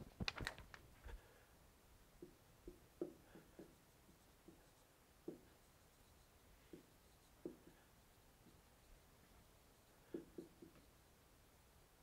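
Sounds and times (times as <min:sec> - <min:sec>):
marker pen on whiteboard: 0:02.2 - 0:12.0.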